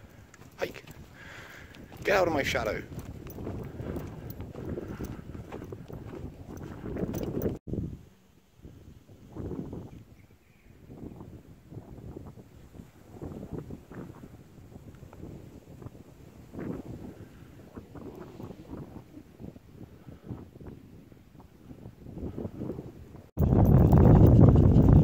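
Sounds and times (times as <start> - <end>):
wind on microphone: 0.0 - 25.0
footsteps on grass: 0.7 - 7.1.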